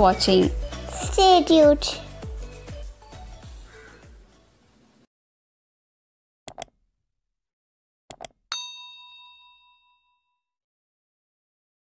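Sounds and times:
mouse clicks: 6.5s - 6.7s, 8.1s - 8.4s
bright bell ding: 8.5s - 10.3s.

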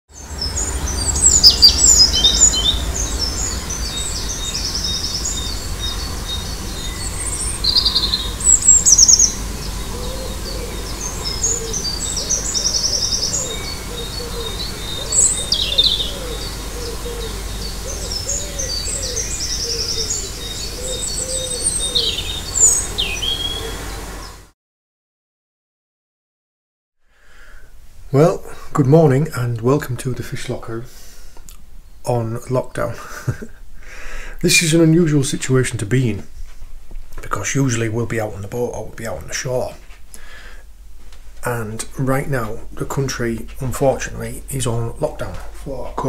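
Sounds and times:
lower bird call: 0.1s - 24.5s
songbirds chirping and trilling: 0.1s - 24.5s, 28.1s - 46.0s
steady low rumble: 0.3s - 20.9s.

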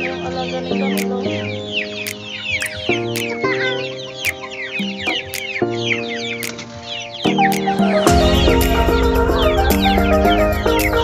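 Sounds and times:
chickens clucking: 0.0s - 8.0s
background music of sustained chords: 0.0s - 11.0s
sharp clicks: 2.0s - 3.4s, 4.2s - 5.7s, 6.4s - 6.8s, 7.5s - 7.8s.

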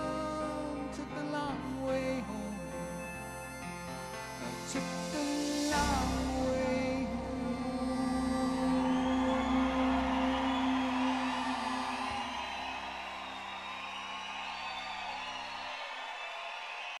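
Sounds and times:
audience cheering and whistling: 3.0s - 17.0s.

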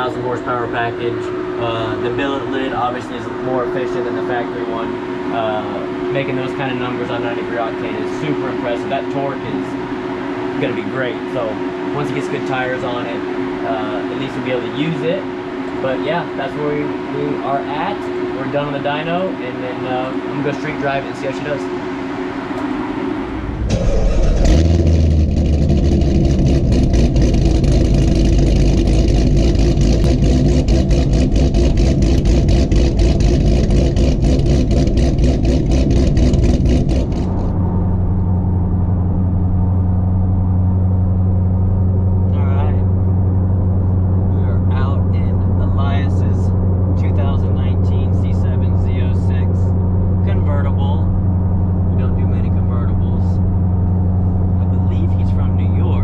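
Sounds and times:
car engine and exhaust roar: 0.0s - 56.0s.

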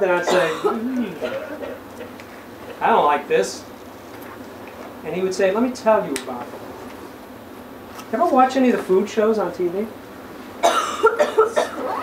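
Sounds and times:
person coughing: 0.2s - 1.8s, 10.6s - 11.9s.

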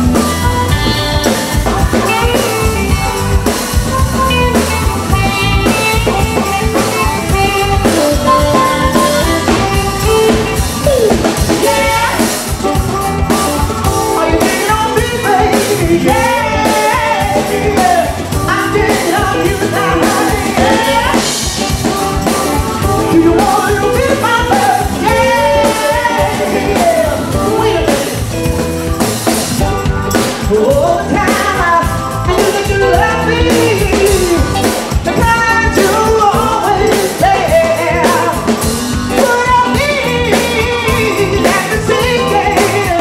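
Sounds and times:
live band playing jazzy song: 0.0s - 43.0s
lead vocals singing: 6.5s - 28.6s, 30.2s - 43.0s.

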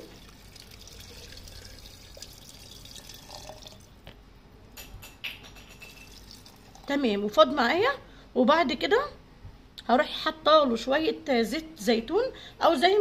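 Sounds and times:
liquid pouring into glass jar: 0.0s - 4.0s, 5.7s - 7.0s.

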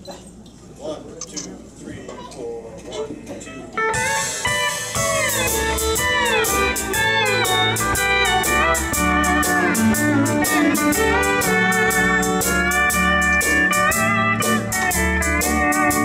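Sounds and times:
country band playing: 3.4s - 16.0s
pedal steel guitar: 3.4s - 16.0s.

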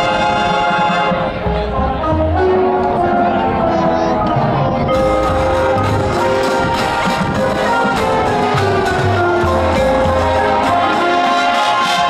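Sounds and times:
brass horns holding chords: 0.0s - 12.0s
steady drum beat: 4.2s - 12.0s.

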